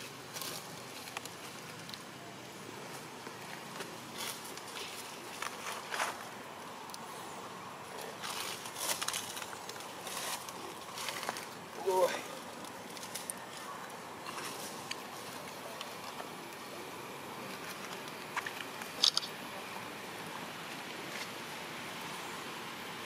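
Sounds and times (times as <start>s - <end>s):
dry leaves rustling: 0.0s - 22.5s
faint outdoor hiss: 0.0s - 23.0s.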